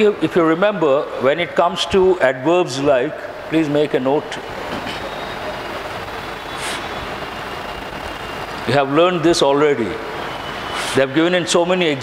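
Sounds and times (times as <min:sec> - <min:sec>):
steady hum and hiss: 0:00.0 - 0:12.0
brief soft hiss: 0:10.8 - 0:11.0.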